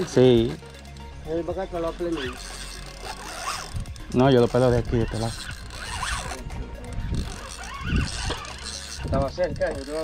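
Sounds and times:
fishing reel gears clicking: 0.0s - 10.0s.

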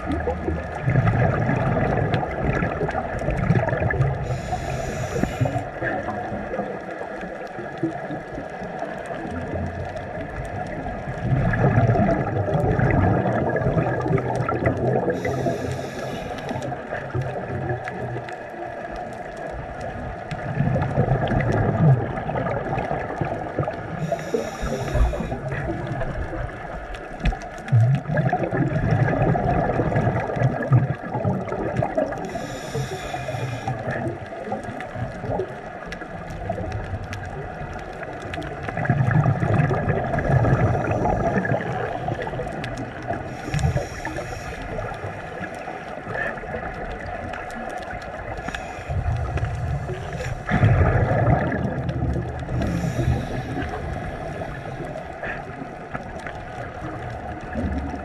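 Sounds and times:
bubbling exhaled air: 0.0s - 7.0s, 7.7s - 18.4s, 19.8s - 58.0s
hissing regulator inhalations: 4.2s - 5.7s, 15.2s - 16.7s, 24.0s - 25.5s, 32.2s - 33.9s, 43.2s - 45.2s, 48.4s - 50.5s, 52.5s - 55.4s.

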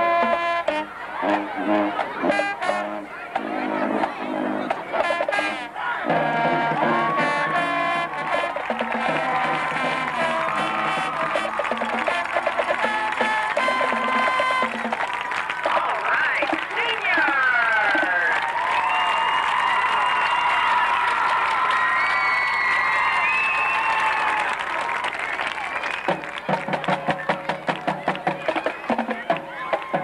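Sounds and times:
marching band brass chords: 0.0s - 18.2s, 25.9s - 30.0s
crowd cheering and applauding: 5.7s - 30.0s
drum beat: 6.1s - 17.4s, 26.1s - 30.0s.

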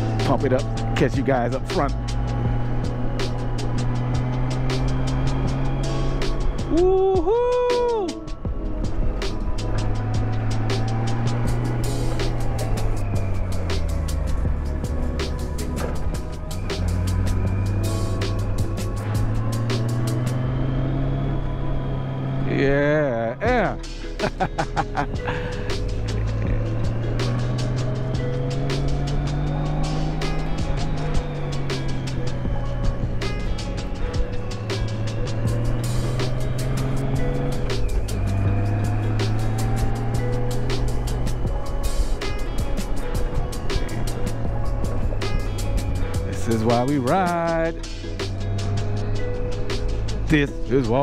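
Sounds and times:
motorcycle engine revving: 0.0s - 6.8s, 8.3s - 51.0s
music playing: 0.0s - 51.0s.

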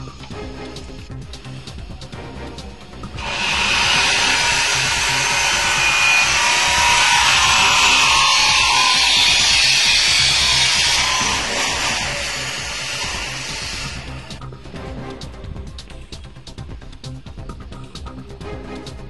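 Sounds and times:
background music: 0.0s - 19.0s
harsh hissing machine noise: 0.8s - 14.5s.

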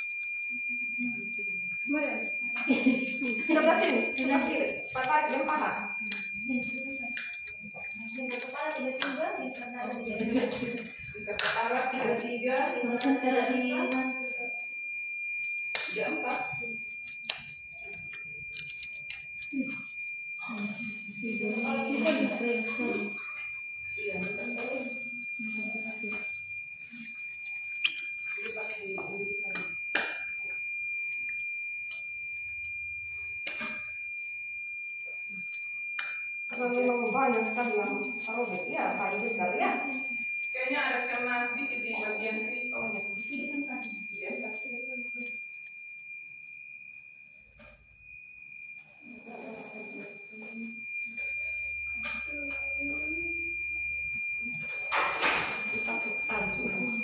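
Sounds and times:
high-pitched electronic tone: 15.5s - 30.6s, 47.3s - 57.0s.

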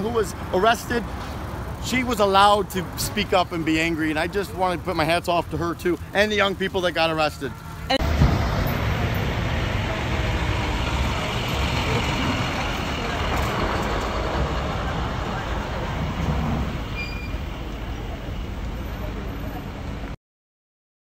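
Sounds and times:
diesel truck engines rumbling: 0.0s - 20.2s.

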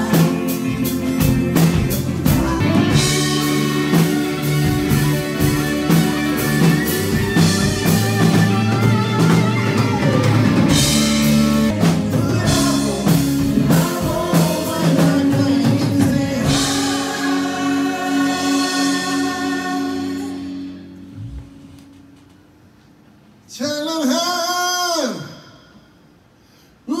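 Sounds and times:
drum kit with cymbals: 0.0s - 21.7s
bass line: 0.0s - 22.2s
electric guitars: 0.0s - 22.4s.

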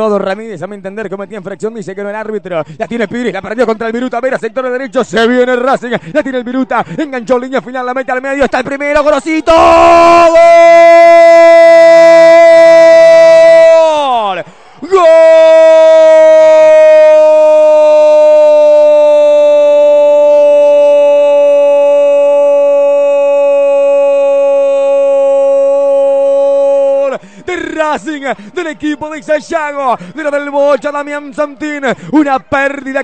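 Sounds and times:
man shouting a long goal cry: 9.3s - 31.0s.

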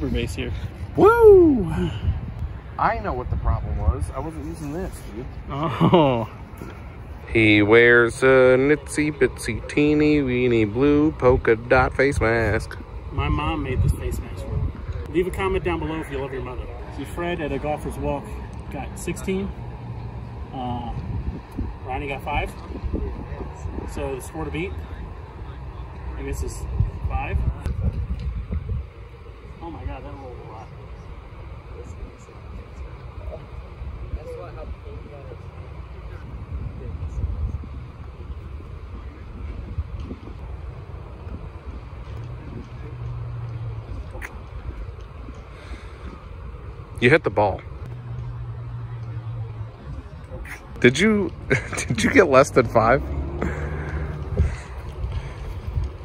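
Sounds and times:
wind rumble on microphone: 0.0s - 8.3s, 9.0s - 56.0s
faint voices: 28.9s - 56.0s.

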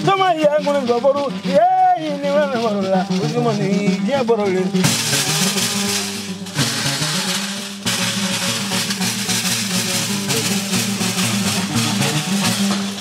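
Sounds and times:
percussion: 0.0s - 13.0s
plucked harp: 0.0s - 13.0s.

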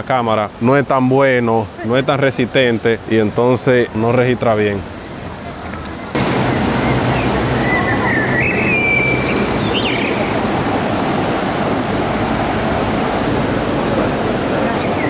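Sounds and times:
loud rushing noise: 6.1s - 15.0s.

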